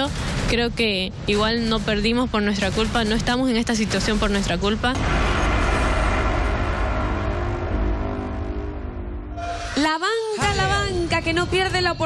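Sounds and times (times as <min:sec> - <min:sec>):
loud rushing noise with deep rumble: 0:00.0 - 0:09.6.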